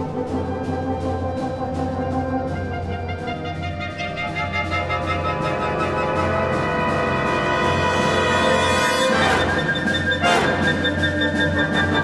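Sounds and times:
concert band playing chords: 5.3 - 12.0.

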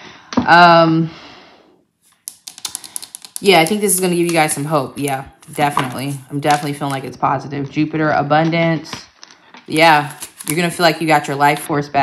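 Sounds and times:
cards being shuffled: 2.0 - 7.2, 9.7 - 11.7.

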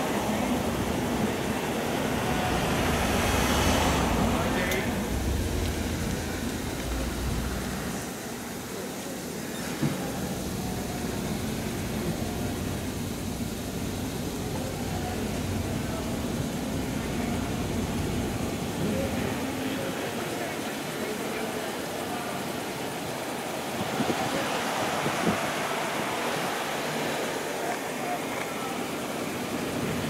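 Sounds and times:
car passing: 0.0 - 8.2
steady traffic noise: 0.0 - 30.0.

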